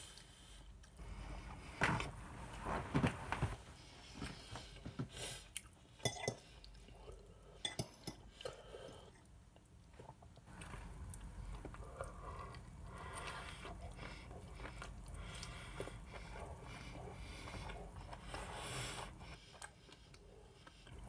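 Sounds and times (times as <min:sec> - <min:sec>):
chewing: 0:08.1 - 0:21.0.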